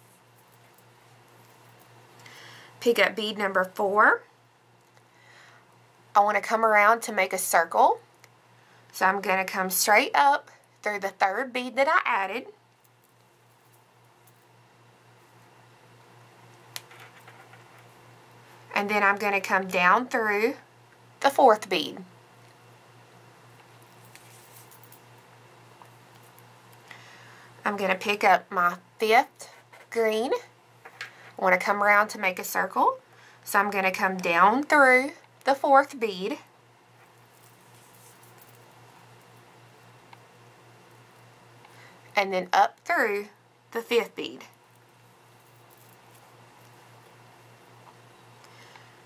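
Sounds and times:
thread rustling through bead: 0.0 - 2.2, 16.4 - 18.7, 23.5 - 26.8, 37.0 - 40.1, 44.5 - 48.4
steady low hum: 0.0 - 49.0.

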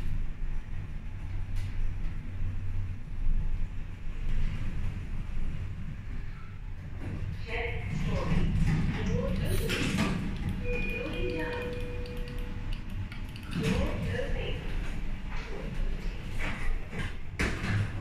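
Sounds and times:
lift car rumble: 0.0 - 18.0
voices: 7.4 - 15.8
electronic beep: 10.6 - 12.6.

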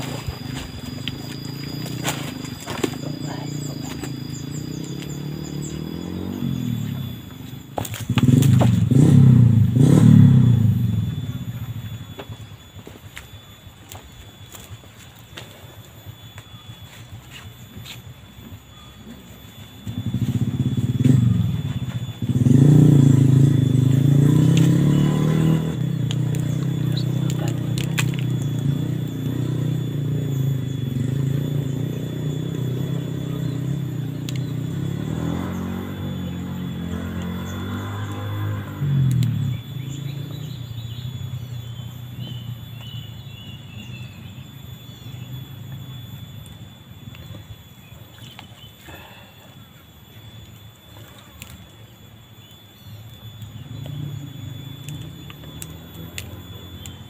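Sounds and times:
engine running: 0.0 - 57.0.

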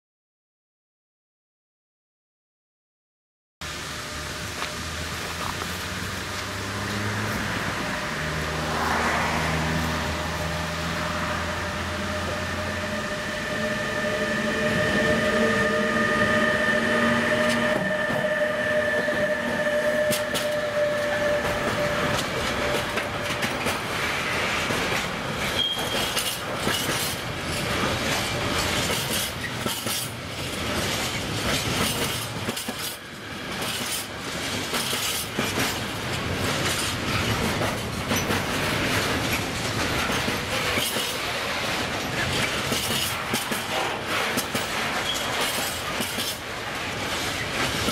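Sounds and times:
electric locomotive whine: 3.6 - 47.9
freight wagons rumbling: 5.0 - 47.9
wheels clacking over rail joints: 17.3 - 47.9.

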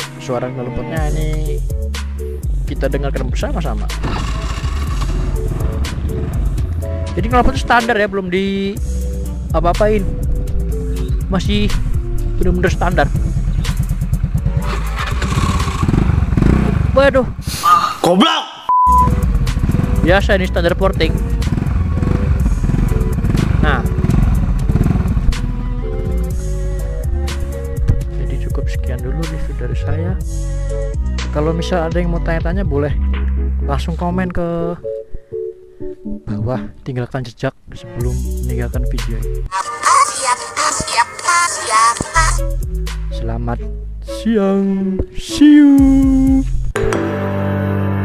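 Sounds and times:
background music: 0.0 - 17.3, 18.9 - 48.0
scooter engine revving: 4.0 - 7.2, 12.9 - 17.2, 19.1 - 26.3.

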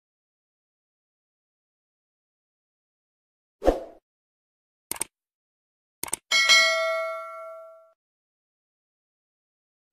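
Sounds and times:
mouse clicks: 4.9 - 5.1
bell ding: 6.3 - 8.0.

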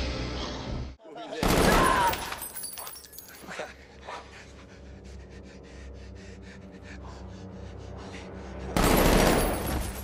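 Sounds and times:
heavy breathing: 3.3 - 9.1
burst of gunfire: 8.8 - 10.0.

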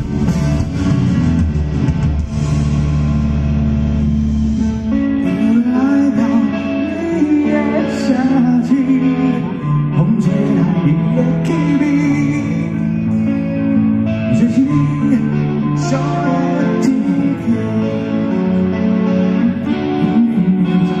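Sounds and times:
live rock band playing: 0.0 - 21.0
person singing: 5.2 - 21.0.

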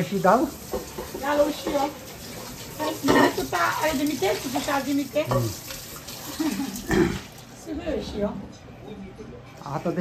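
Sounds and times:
tap water splashing into metal pan: 0.0 - 7.5.

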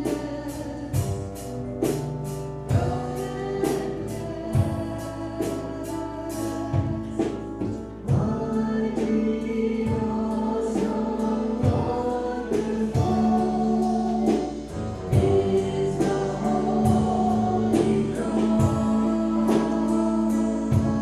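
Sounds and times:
instrumental accompaniment: 0.0 - 21.0
sustained bass line: 0.0 - 21.0
voices singing together: 0.0 - 21.0.

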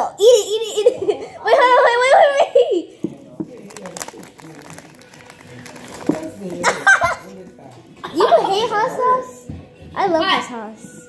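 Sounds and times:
faint music: 0.0 - 11.0
foil chip bag crinkling: 3.5 - 6.9.

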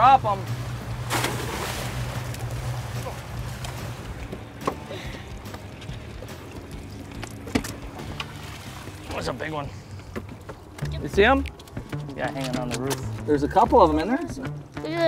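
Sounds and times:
low boat hum: 0.0 - 15.0
crab trap splashing into water: 1.0 - 4.9.

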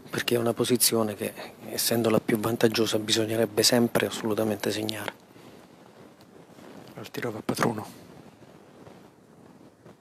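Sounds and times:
man speaking: 0.1 - 5.1, 6.9 - 8.0.

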